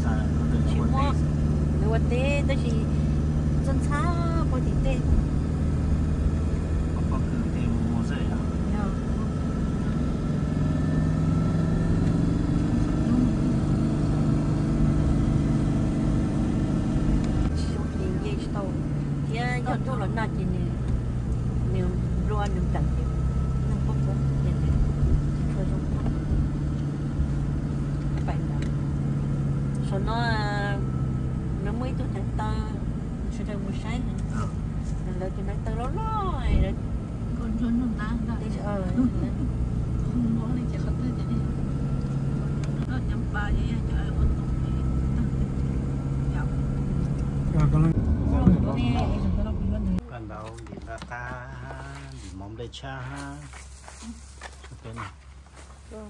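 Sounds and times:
car engine and road noise: 0.0s - 56.0s.

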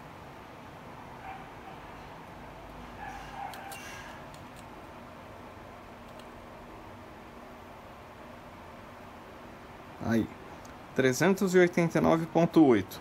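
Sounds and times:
distant animal call: 3.0s - 4.2s.

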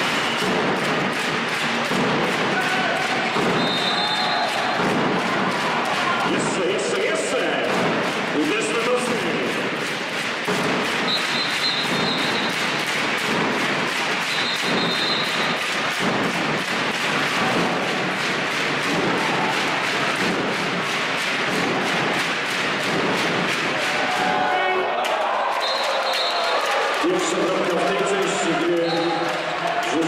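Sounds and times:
crowd din: 0.0s - 30.0s
fast rhythmic beating: 0.0s - 30.0s.

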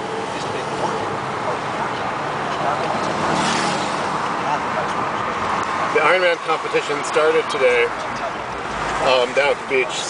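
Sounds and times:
car engine and tyre noise: 0.0s - 10.0s
passing traffic rush: 0.0s - 10.0s.

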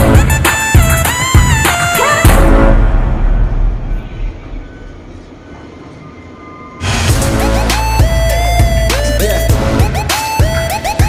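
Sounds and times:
background music: 0.0s - 11.0s
low rumble of machinery: 2.5s - 7.2s.

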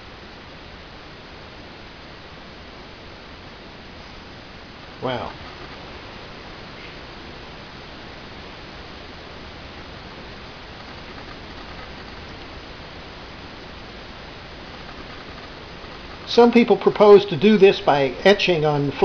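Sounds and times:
steady background hiss: 0.0s - 19.0s.

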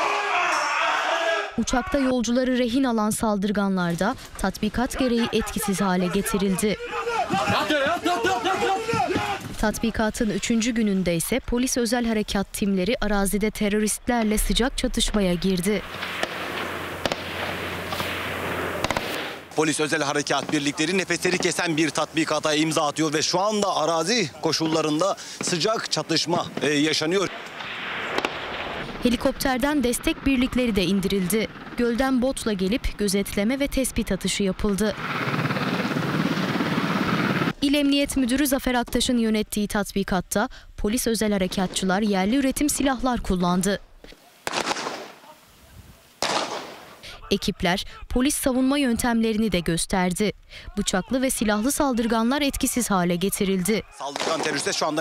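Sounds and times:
steady background hiss: 15.7s - 29.0s, 39.1s - 47.3s
gunshots: 15.8s - 19.5s, 26.6s - 29.0s, 44.4s - 45.3s, 46.2s - 47.0s, 54.0s - 55.0s
handgun shot: 18.8s - 19.4s, 44.5s - 45.2s, 46.2s - 46.9s, 54.1s - 54.6s.

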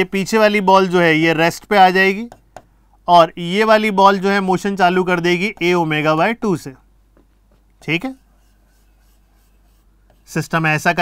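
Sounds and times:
chalk scratching on blackboard: 7.8s - 10.6s.

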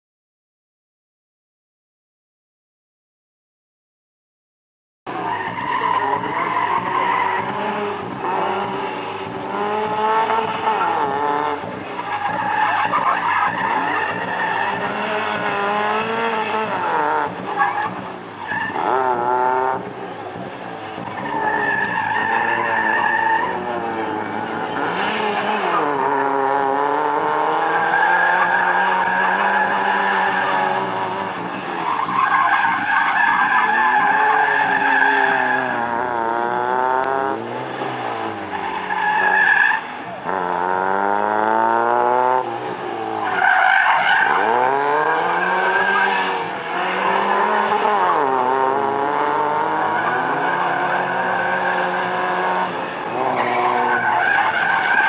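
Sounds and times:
car engine revving: 5.1s - 55.0s.

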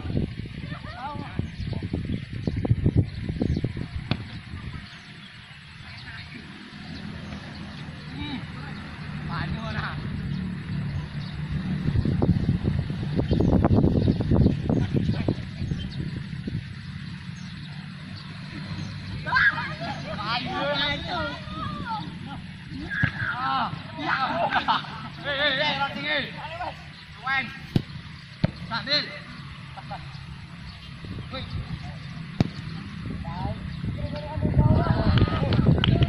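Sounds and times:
wind buffeting microphone: 0.0s - 8.0s, 9.0s - 23.4s, 30.2s - 36.0s
distant shouts: 4.4s - 11.6s, 17.2s - 36.0s.

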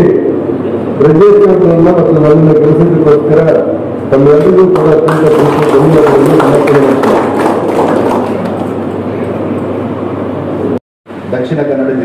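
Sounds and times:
man speaking over a microphone: 1.0s - 7.4s, 11.3s - 12.0s
crowd clapping: 4.3s - 9.4s.

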